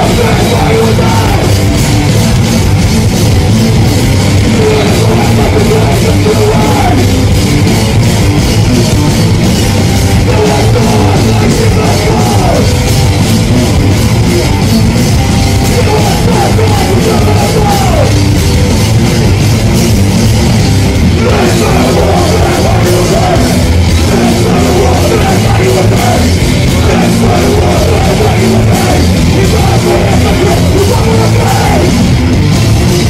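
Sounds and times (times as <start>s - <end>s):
shouted lead vocal: 0.0s - 2.0s, 4.3s - 7.4s, 10.1s - 13.0s, 15.6s - 18.4s, 21.0s - 32.4s
electric guitar and bass: 0.0s - 33.0s
fast drumbeat: 0.0s - 33.0s.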